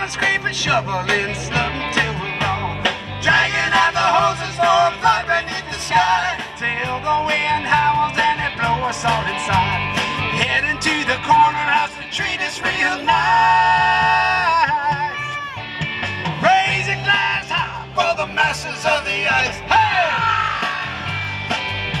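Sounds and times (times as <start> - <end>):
rock band playing: 0.0 - 22.0.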